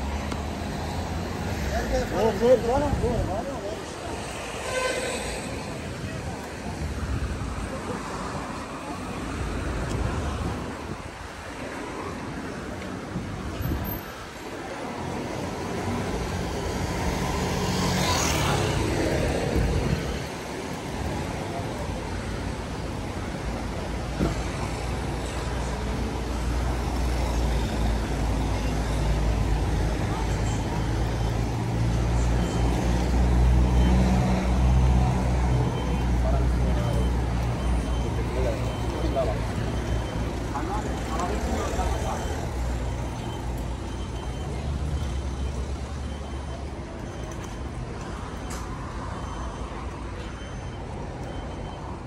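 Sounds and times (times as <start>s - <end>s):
street traffic: 0.0s - 52.0s.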